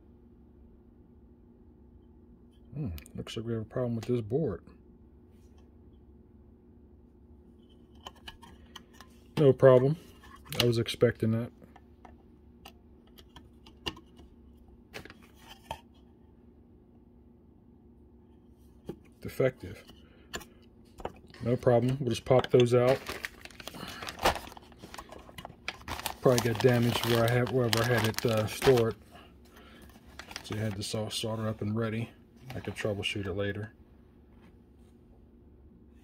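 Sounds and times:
low room hum: 0.0 - 36.0
plastic bag crinkling: 22.2 - 29.1, 29.8 - 31.4.

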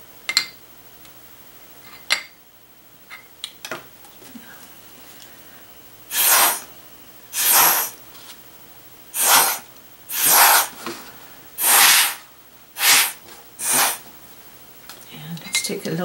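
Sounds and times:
breath puffs through a straw: 6.1 - 6.7, 7.4 - 8.0, 9.2 - 10.8, 11.6 - 12.2, 12.8 - 14.0.

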